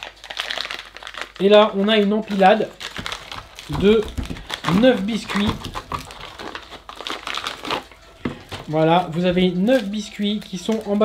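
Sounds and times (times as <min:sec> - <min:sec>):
foil and plastic packaging crinkling: 0:00.0 - 0:11.0.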